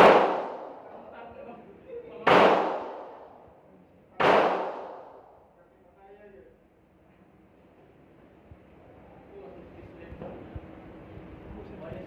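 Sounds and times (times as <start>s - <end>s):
handgun shots echoing: 0.0s - 0.9s, 2.3s - 3.3s, 4.2s - 5.3s.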